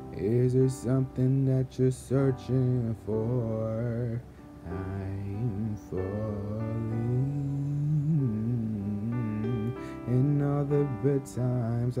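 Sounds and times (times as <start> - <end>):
man singing a low held note: 0.0 - 12.0.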